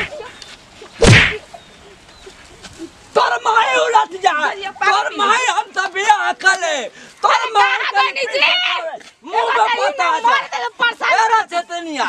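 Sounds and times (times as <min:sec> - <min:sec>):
stick swishing and cracking: 0:01.0 - 0:01.4.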